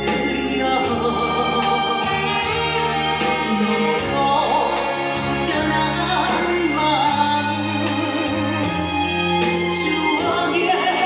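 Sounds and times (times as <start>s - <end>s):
song over backing track: 0.0s - 11.0s.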